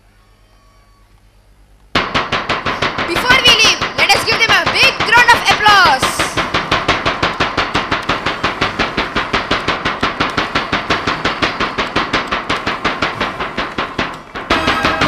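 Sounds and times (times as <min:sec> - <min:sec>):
fast drum rhythm: 0:02.0 - 0:15.0.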